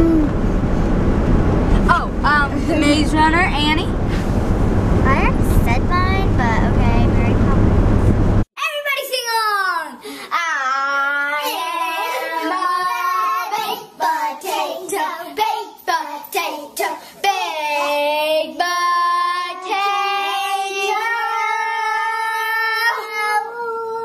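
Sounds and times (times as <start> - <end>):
child singing: 8.7 - 24.0.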